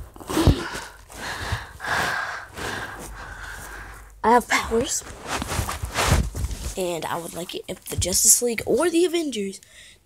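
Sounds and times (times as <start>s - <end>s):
person breathing hard: 0.2s - 4.2s.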